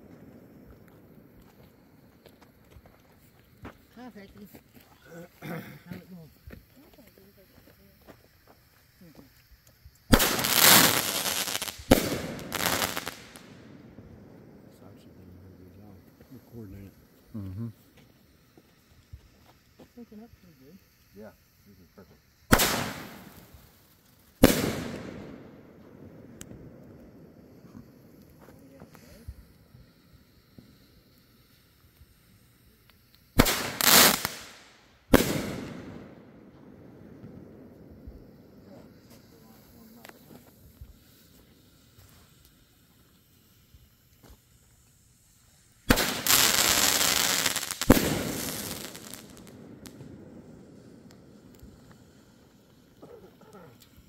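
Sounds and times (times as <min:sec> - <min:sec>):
fireworks bangs: 0:10.1 - 0:17.2, 0:22.5 - 0:29.4, 0:33.4 - 0:42.2, 0:45.7 - 0:54.0.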